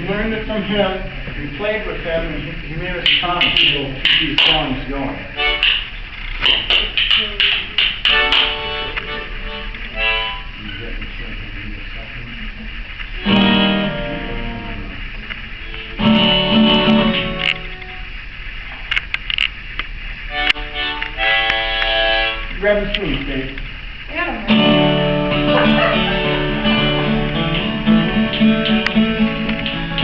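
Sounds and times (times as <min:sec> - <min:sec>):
held melodic phrases: 0:03.0 - 0:10.7, 0:13.2 - 0:18.2, 0:20.3 - 0:22.6, 0:24.5 - 0:30.0
acoustic guitar tune: 0:03.0 - 0:11.0, 0:13.0 - 0:18.2, 0:20.3 - 0:23.2, 0:24.2 - 0:30.0.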